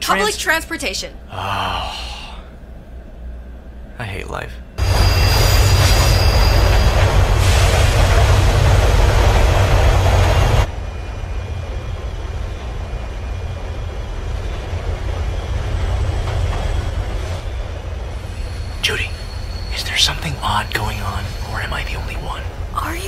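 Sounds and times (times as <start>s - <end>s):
rumble inside train car: 1.3s - 23.0s
subway train passing: 2.5s - 23.0s.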